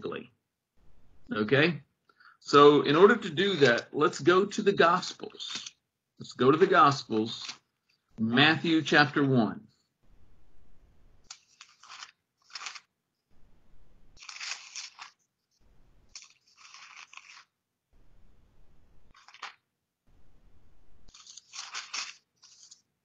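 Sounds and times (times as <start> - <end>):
thin pages rustling: 6.6 - 8.0, 11.2 - 12.9, 14.2 - 17.6, 19.1 - 19.7, 21.1 - 23.0.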